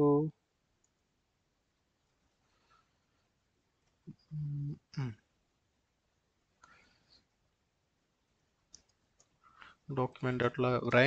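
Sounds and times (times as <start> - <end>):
faint breathy sound: 2.3 - 3.4, 6.6 - 7.4.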